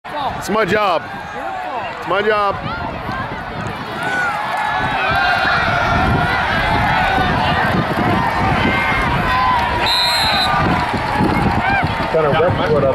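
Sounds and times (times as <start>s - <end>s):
crowd cheering and shouting: 0.1s - 12.9s
referee's whistle blowing: 9.8s - 10.6s.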